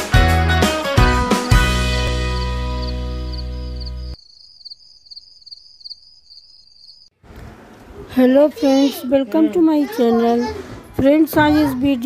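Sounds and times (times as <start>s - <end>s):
high pulsing cricket-like chirp: 2.4s - 7.1s.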